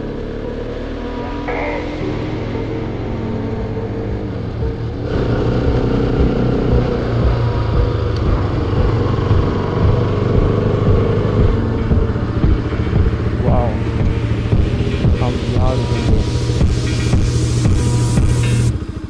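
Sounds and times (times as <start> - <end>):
motorcycle engine running: 0.0 - 19.0
road noise: 0.0 - 19.0.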